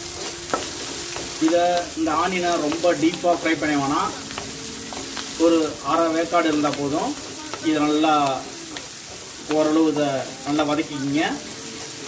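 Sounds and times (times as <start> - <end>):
vegetables sizzling in oil: 0.0 - 12.0
wooden spatula clicking on pan: 0.2 - 5.4.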